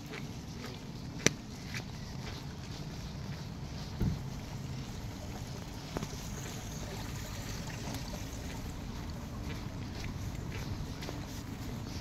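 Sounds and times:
footsteps on wet pavement: 0.0s - 12.0s.

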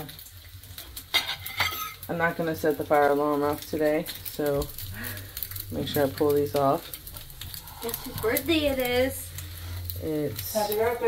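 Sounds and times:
bacon sizzling in a frying pan: 0.0s - 11.0s
utensil scraping and clinking on pan: 0.8s - 2.1s.

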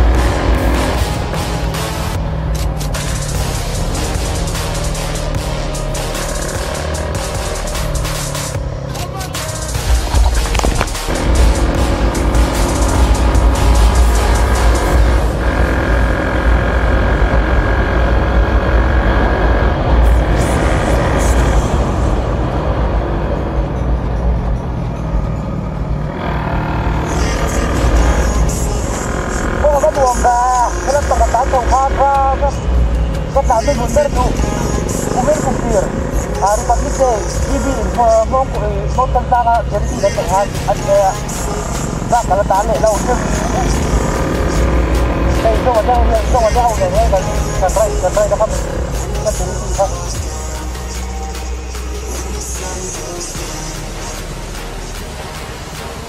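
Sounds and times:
motorcycle engine: 0.0s - 56.0s
music with singing voice: 0.0s - 56.0s
wind rumble: 9.8s - 12.1s.

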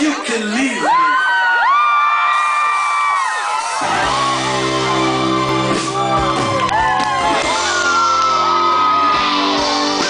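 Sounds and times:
concert audience cheering: 0.0s - 10.0s
high whoop: 0.8s - 9.5s
rock band guitar and bass chord: 3.8s - 10.0s.

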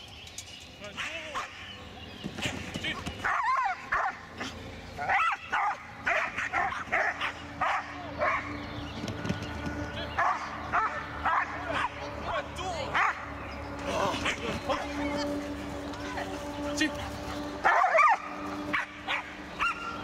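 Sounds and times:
dog barking and yipping: 3.2s - 8.6s, 10.2s - 12.2s, 12.9s - 13.4s, 17.0s - 20.0s.

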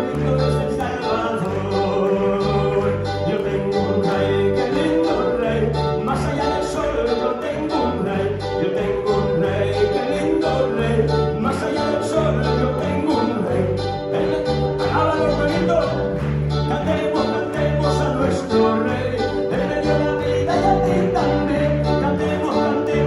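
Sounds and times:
bass guitar: 0.0s - 23.0s
electric keyboard: 0.0s - 23.0s
man singing into microphone: 0.0s - 23.0s.

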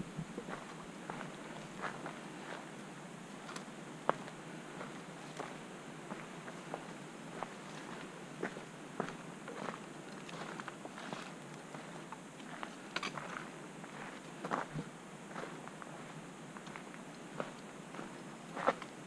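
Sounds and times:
footsteps on dirt trail: 0.0s - 2.7s, 3.4s - 18.9s.

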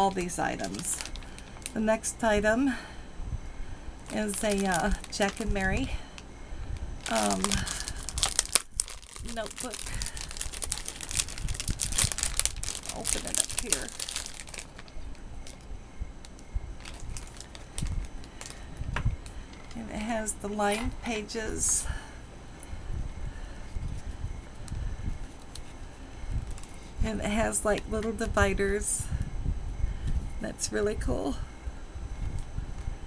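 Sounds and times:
plastic sleeve crinkling: 0.2s - 1.8s, 4.1s - 5.9s, 6.8s - 19.8s
paper rustle: 7.0s - 15.6s.

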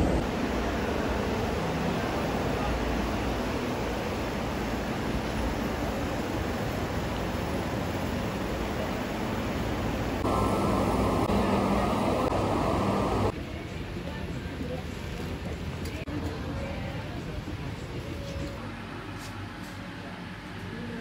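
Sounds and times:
outdoor background rush: 0.0s - 21.0s.

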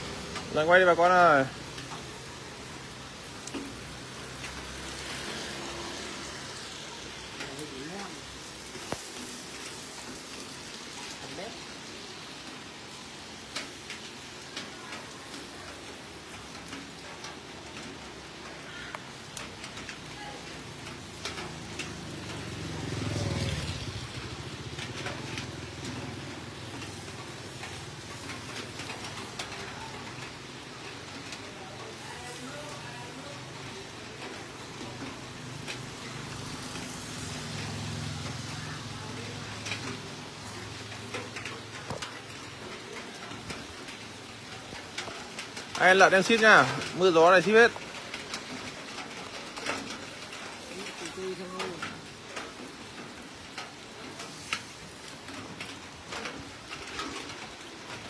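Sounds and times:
fat sizzling on roasting pig: 0.0s - 58.0s.

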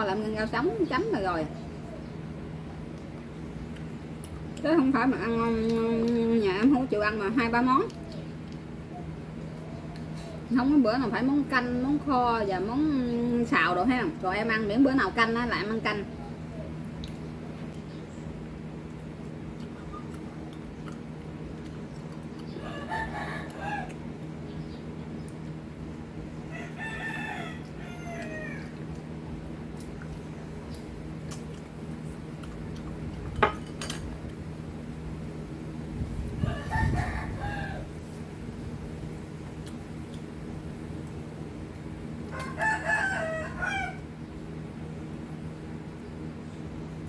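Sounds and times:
steady low hum: 0.0s - 47.0s
rooster crowing: 22.6s - 24.0s, 26.5s - 28.8s, 36.3s - 38.1s, 42.3s - 44.1s.

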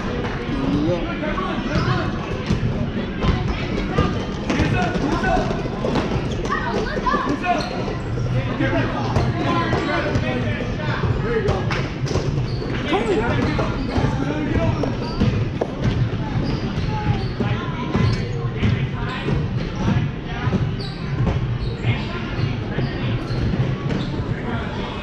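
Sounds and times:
chatter of voices: 0.0s - 25.0s.

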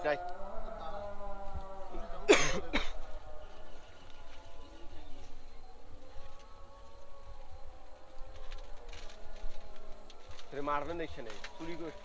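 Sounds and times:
background drone: 0.0s - 12.0s
man coughing: 2.3s - 3.0s.

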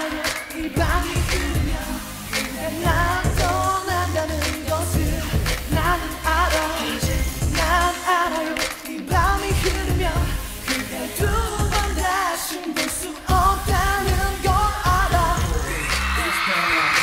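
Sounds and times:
backing track with heavy bass beat: 0.0s - 17.0s
man singing dance-pop: 0.0s - 17.0s.

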